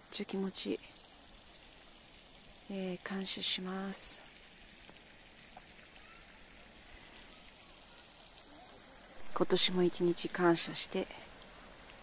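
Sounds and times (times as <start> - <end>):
pond fountain splashing: 0.0 - 12.0.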